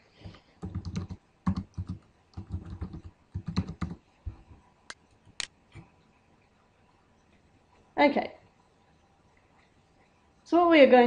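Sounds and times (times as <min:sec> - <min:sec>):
computer keyboard typing: 0:00.2 - 0:04.0.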